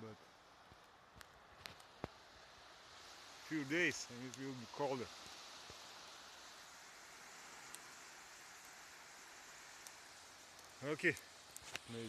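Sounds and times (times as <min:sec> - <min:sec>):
small waves on shore: 0:00.0 - 0:12.0
wind: 0:00.0 - 0:12.0
light ticks: 0:07.6 - 0:08.0, 0:09.7 - 0:12.0.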